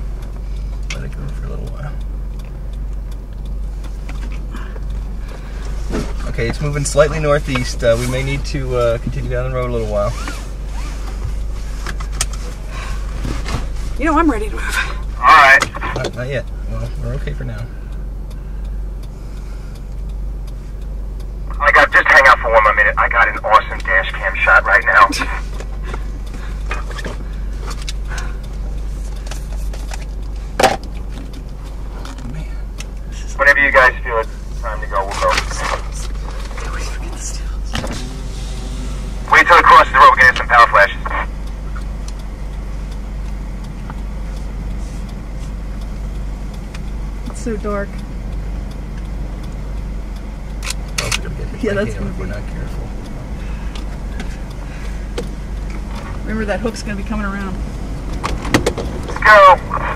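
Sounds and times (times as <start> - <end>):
car engine idling: 0.0 - 59.9
low rumble of wind: 0.0 - 59.9
sharp click: 50.5 - 51.3.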